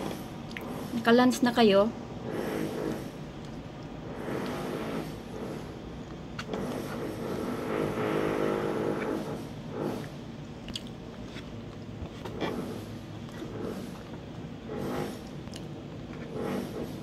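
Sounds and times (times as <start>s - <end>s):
person chewing: 3.4s - 4.6s, 10.0s - 12.4s, 15.2s - 16.3s.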